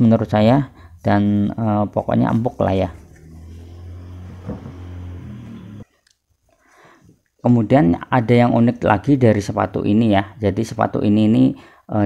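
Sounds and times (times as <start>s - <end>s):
low motor hum: 0.6s - 5.9s.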